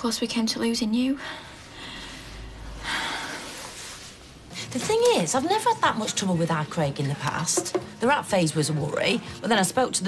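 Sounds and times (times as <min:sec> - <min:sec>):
woman speaking: 0:04.7 - 0:10.0.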